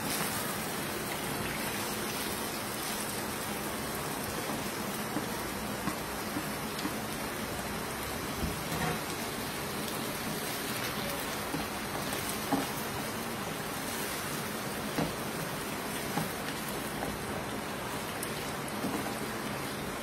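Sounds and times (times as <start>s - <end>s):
food sizzling in hot oil: 0.0s - 20.0s.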